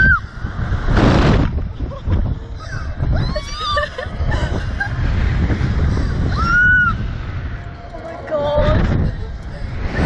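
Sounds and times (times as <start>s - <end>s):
wind rushing on microphone: 0.0s - 10.0s.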